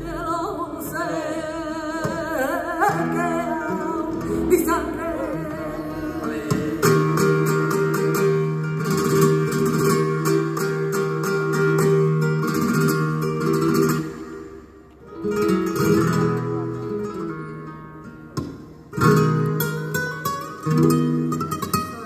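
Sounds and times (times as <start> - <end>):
acoustic flamenco guitar: 0.0 - 22.0
woman singing flamenco: 0.0 - 22.0.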